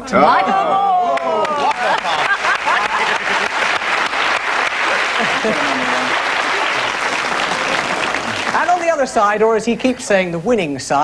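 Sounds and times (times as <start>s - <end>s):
audience applauding: 0.3s - 9.2s
person speaking: 8.5s - 10.9s.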